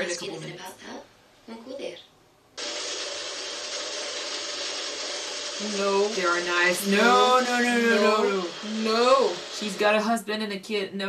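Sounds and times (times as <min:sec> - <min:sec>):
coffee machine grinding whir: 0:02.6 - 0:10.0.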